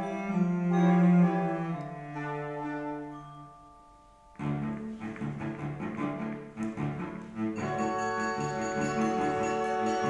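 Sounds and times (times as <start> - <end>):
low string repeated notes: 0.0 - 10.0.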